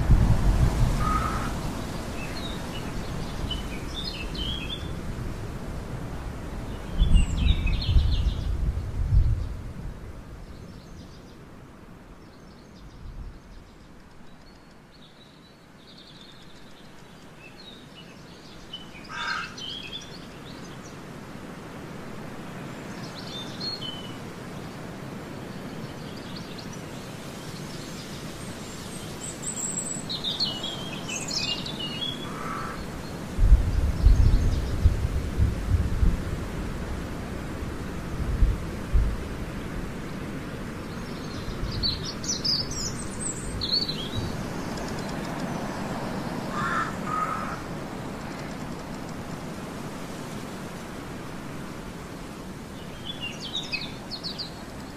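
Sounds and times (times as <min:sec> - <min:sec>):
steady outdoor hiss: 0:00.0 - 0:54.9
birds chirping: 0:22.8 - 0:34.9, 0:40.8 - 0:49.2.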